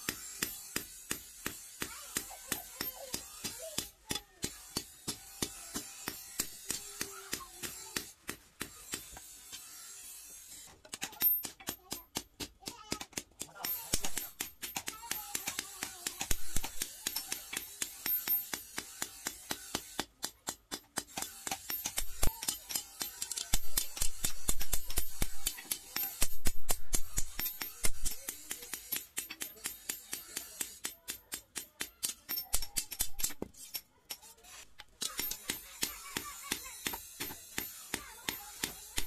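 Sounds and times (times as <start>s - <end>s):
hammer striking steel on anvil: 13.4s - 33.8s.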